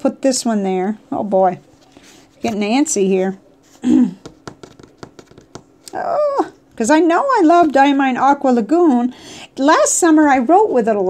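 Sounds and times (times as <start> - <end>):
person clearing throat: 3.8 - 4.2
cards tapping on wooden table: 4.2 - 5.8.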